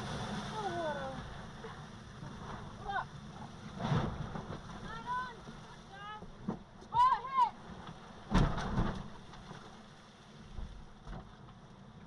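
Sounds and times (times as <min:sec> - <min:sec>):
rushing water: 0:00.0 - 0:11.2
wind: 0:00.0 - 0:12.0.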